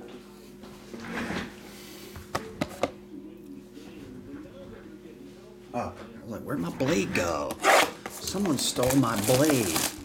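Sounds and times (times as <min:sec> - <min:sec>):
shrink-wrap rustle: 0:07.6 - 0:10.0.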